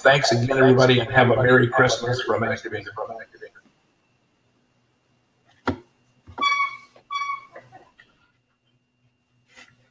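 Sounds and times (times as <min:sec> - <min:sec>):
faint low hum: 0:00.0 - 0:09.9
short electronic beeps: 0:06.4 - 0:07.6.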